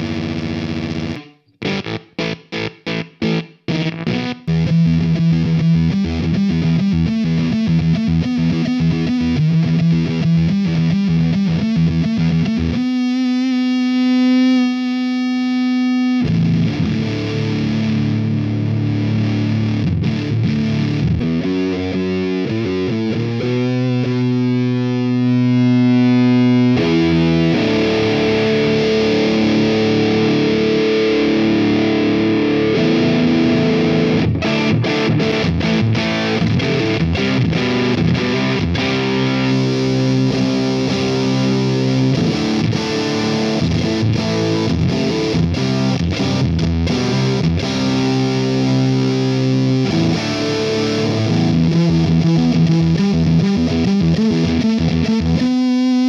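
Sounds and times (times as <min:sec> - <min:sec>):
fuzzed electric guitar: 0:00.0 - 0:56.0.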